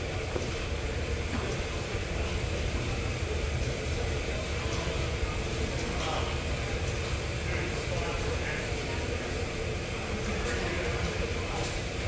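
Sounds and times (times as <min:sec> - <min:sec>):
gym machinery rumble: 0:00.0 - 0:12.0.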